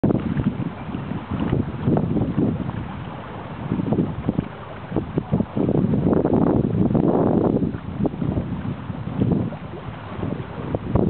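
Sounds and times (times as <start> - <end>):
choppy water: 0.0 - 11.0
wind buffeting microphone: 0.0 - 11.0.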